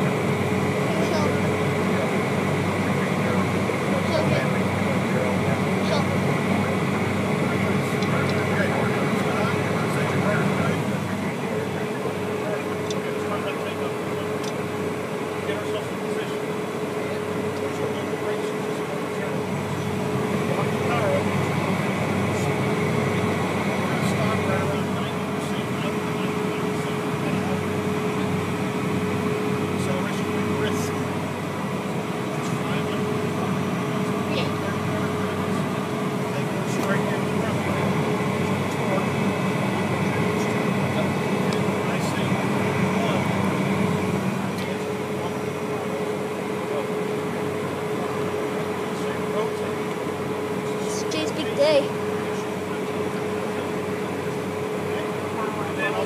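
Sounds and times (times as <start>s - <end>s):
jet engine cabin drone: 0.0s - 56.0s.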